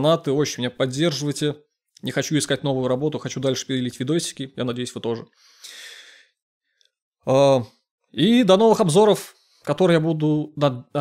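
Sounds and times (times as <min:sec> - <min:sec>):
man breathing: 0:05.3 - 0:07.0.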